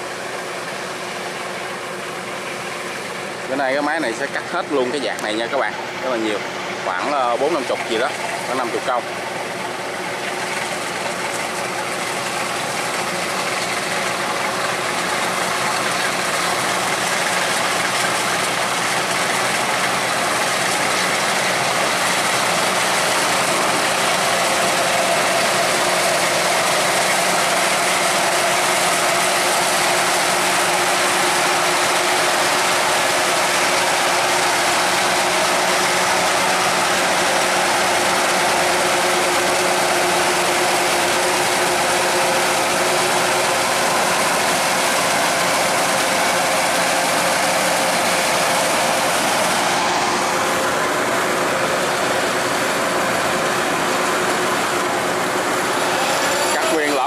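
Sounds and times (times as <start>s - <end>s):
combine harvester running: 0.0s - 57.0s.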